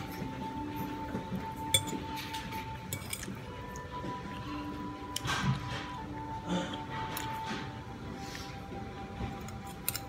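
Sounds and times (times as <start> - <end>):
cutlery clinking on ceramic plate: 1.6 - 3.4.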